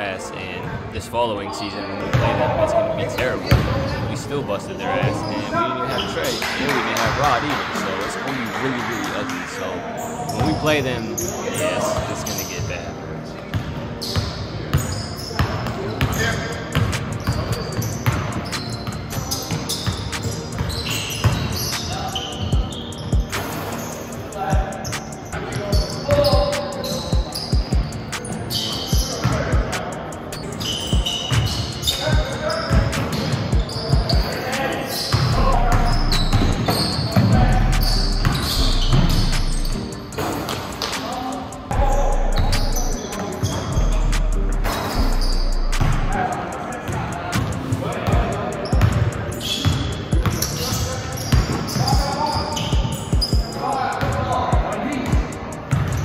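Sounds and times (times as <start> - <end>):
sneakers squeaking: 3.1 - 56.0
players calling out: 15.9 - 55.7.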